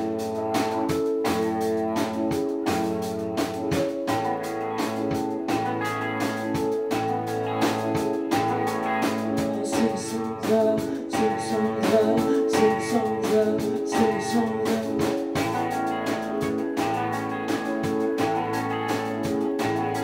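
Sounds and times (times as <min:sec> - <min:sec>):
drum kit steady beat: 0:00.0 - 0:20.0
electric guitars: 0:00.0 - 0:20.0
keyboard: 0:00.0 - 0:20.0.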